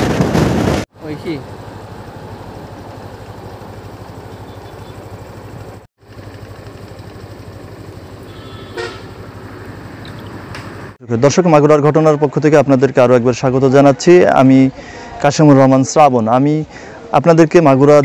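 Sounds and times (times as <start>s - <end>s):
vehicle engine running: 1.0s - 11.0s
short horn toot: 8.2s - 9.2s.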